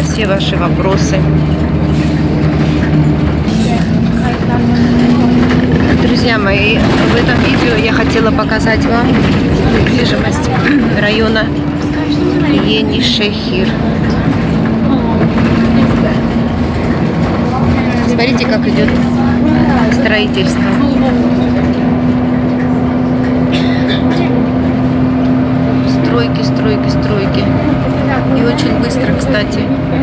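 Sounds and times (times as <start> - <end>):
bus engine drone: 0.0 - 30.0
constant low hum: 0.0 - 30.0.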